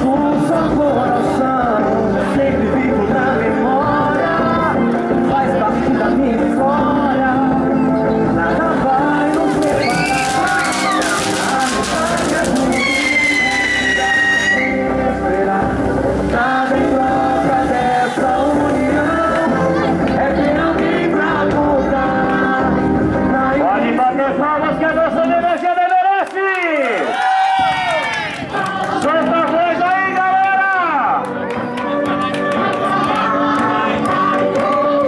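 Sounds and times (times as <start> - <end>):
person singing long notes: 0.0 - 23.9
music: 0.0 - 26.0, 27.5 - 35.0
crowd voices: 0.0 - 35.0
firework sparks crackling: 9.2 - 19.7
firework high whistle: 9.6 - 14.9.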